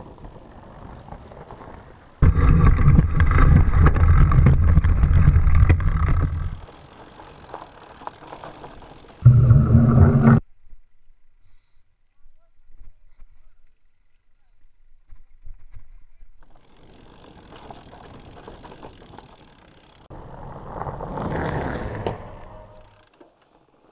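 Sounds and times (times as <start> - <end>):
bike tires humming on dirt: 0.0 - 11.4, 12.8 - 23.9
trail noise: 0.0 - 23.9.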